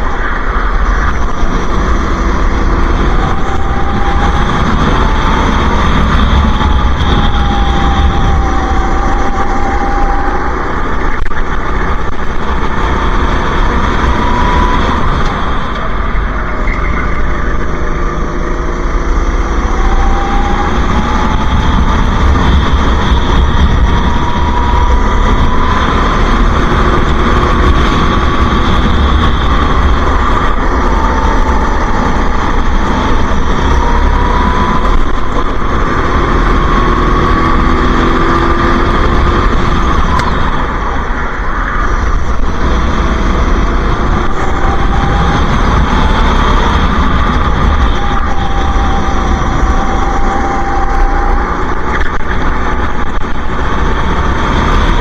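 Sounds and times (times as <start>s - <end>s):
racing kart engine revving: 0.0s - 55.0s.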